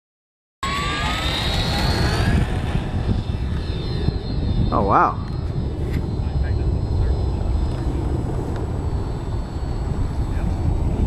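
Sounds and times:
low rumble: 0.6s - 11.0s
model plane motor whining: 0.6s - 11.0s.

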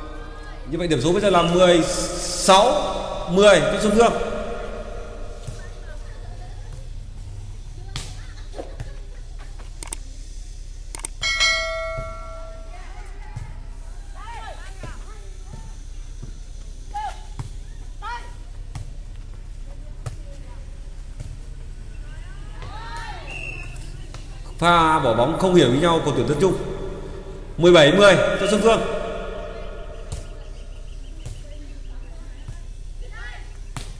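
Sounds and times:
low hum: 0.0s - 7.4s, 24.9s - 31.2s
players calling: 0.0s - 7.8s, 21.4s - 33.9s
steady held tone: 25.0s - 30.8s.

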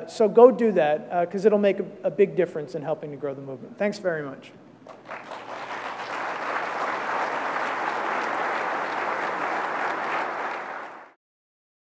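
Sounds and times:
audience applauding: 4.9s - 11.2s.

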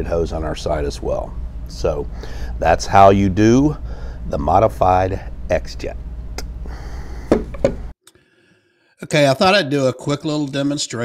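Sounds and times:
low room hum: 0.0s - 7.9s
knocks on a table: 7.3s - 7.8s.

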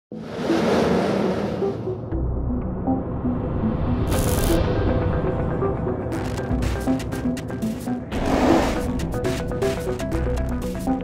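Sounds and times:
whooshing swell: 0.1s - 2.2s.

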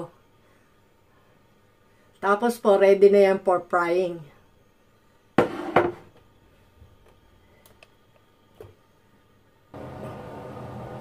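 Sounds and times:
kitchenware knocks: 5.4s - 6.1s.

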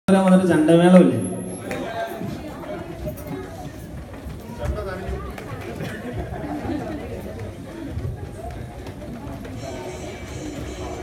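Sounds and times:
people chattering: 0.1s - 11.0s
music: 9.6s - 11.0s.

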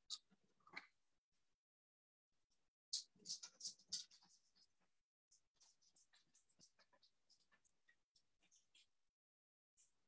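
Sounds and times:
small clicks and rustles: 2.9s - 9.0s.

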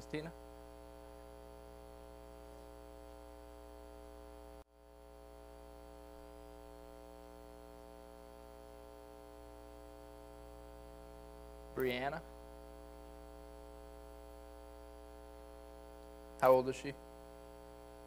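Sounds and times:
electrical mains hum: 0.0s - 18.0s.

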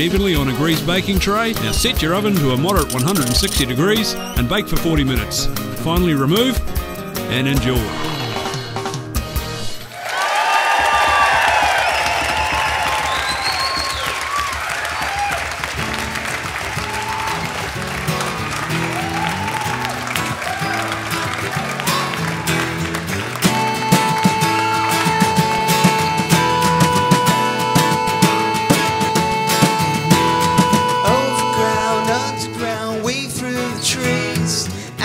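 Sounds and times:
band playing guitar and drums: 0.0s - 9.9s, 10.8s - 34.8s
audience applauding and cheering: 9.9s - 31.6s.

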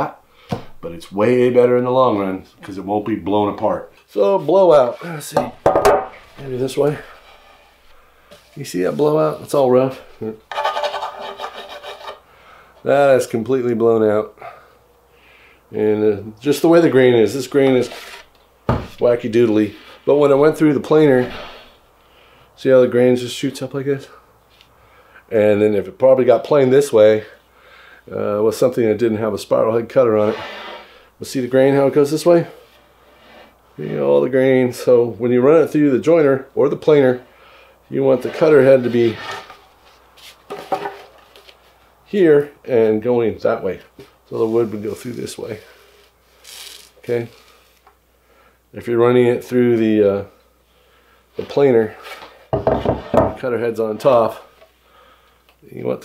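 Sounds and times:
man speaking: 0.8s - 5.6s, 6.4s - 7.1s, 18.9s - 21.4s, 33.8s - 37.2s, 37.9s - 39.2s.

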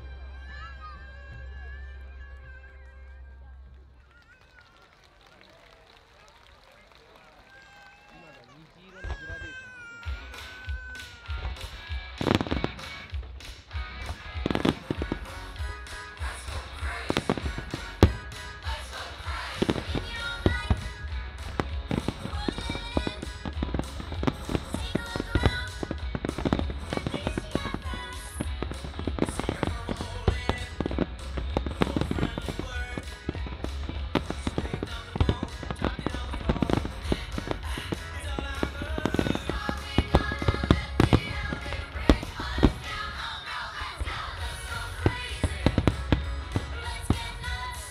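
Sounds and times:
music: 0.0s - 4.0s, 10.1s - 47.9s
fireworks bursting and crackling: 6.8s - 47.9s
loud firework reports: 8.9s - 47.9s.

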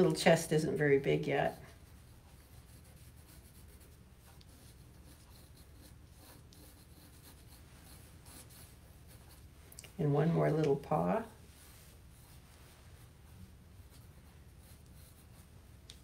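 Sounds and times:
pencil scratching on paper: 1.4s - 9.5s, 11.8s - 15.8s.

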